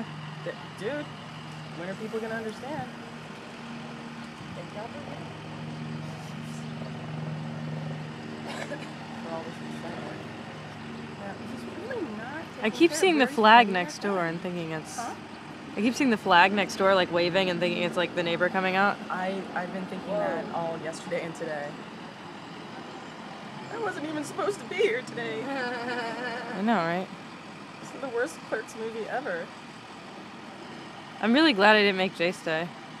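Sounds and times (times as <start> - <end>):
idling engines low hum: 0.0 - 33.0
woman's voice: 11.2 - 15.2, 15.8 - 21.8, 23.7 - 27.1, 27.8 - 29.5, 31.2 - 32.7.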